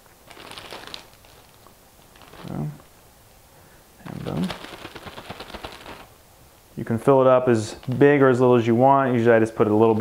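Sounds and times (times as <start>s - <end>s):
plastic bag crinkling: 0.0s - 3.0s, 4.1s - 6.2s, 7.6s - 8.4s.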